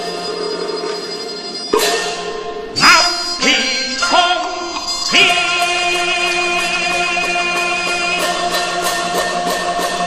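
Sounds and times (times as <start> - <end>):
sustained instrumental notes: 0.0 - 10.0
sharp percussion strike: 1.7 - 10.0.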